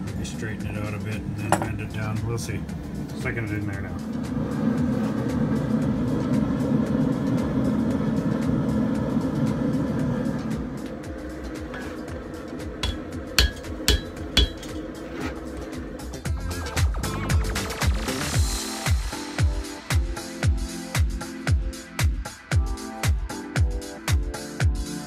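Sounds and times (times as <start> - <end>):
hammer ringing on anvil: 12.8 - 14.9.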